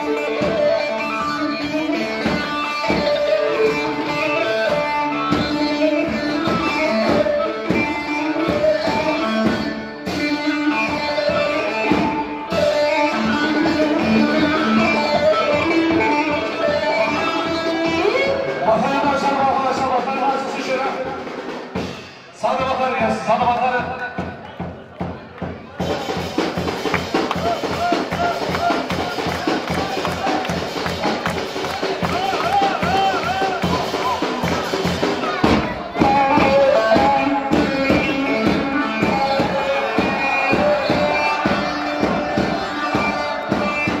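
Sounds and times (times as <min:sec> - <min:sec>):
ornamented lead melody: 0:00.0 - 0:19.6
drum beat: 0:00.0 - 0:44.0.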